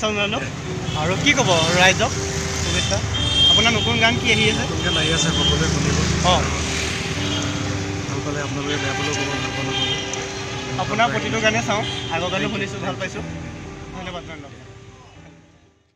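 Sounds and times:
men talking: 0:00.0 - 0:15.2
street traffic rumble: 0:00.0 - 0:15.3.

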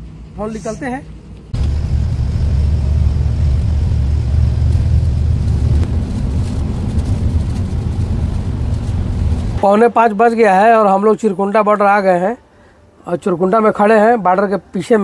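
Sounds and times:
truck engine and road rumble: 0:00.0 - 0:10.7.

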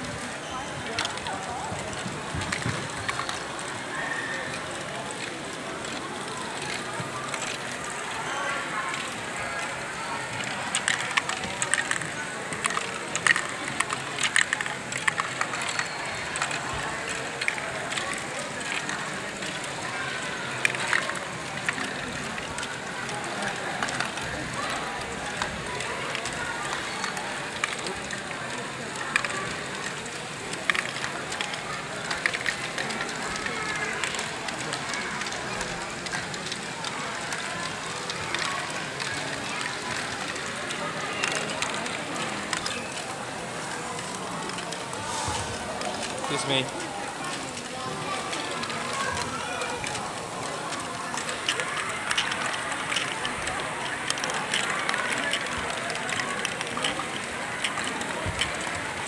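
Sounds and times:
indistinct background chatter: 0:00.0 - 0:59.0
plastic balls clicking and clattering: 0:00.1 - 0:59.0.

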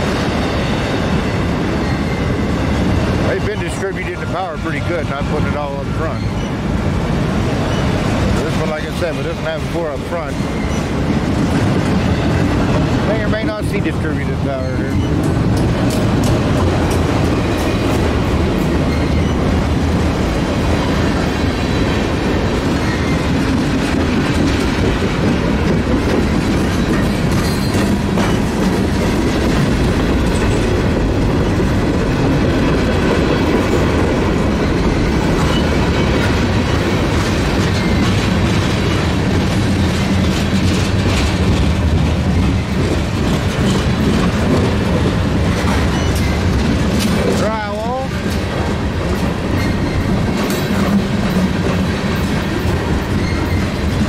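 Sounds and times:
clickety-clack over rail joints: 0:00.0 - 0:54.0
freight train wheels rumbling: 0:00.0 - 0:54.0.

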